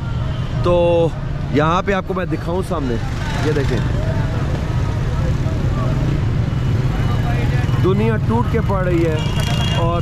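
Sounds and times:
motorcycle and traffic engines: 0.0s - 10.0s.

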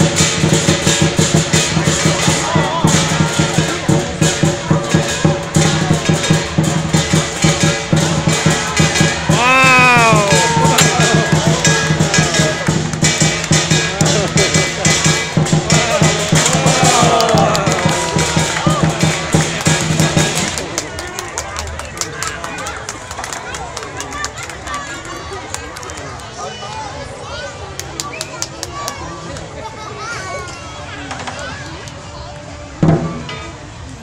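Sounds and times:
cymbals clashing: 0.0s - 20.6s
big drum beating: 0.0s - 21.5s
person calling out: 9.3s - 10.9s.

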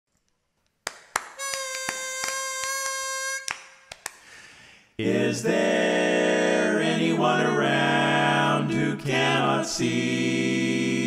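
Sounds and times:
pitch pipe reedy note: 1.4s - 3.5s.

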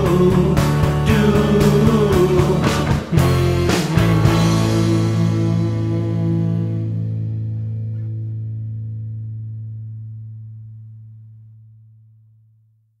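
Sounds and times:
rock guitar chord ringing out: 0.6s - 11.0s.

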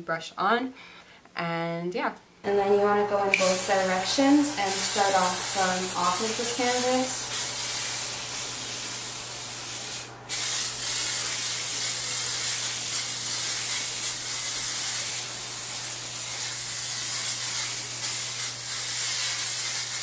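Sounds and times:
aerosol can spraying hiss: 3.3s - 20.0s.

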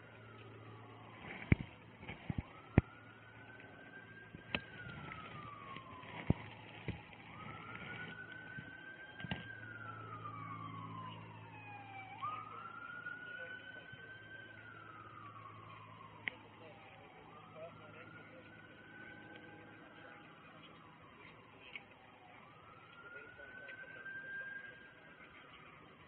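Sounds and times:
fainter higher siren: 0.0s - 26.0s
siren wailing: 0.0s - 26.0s.

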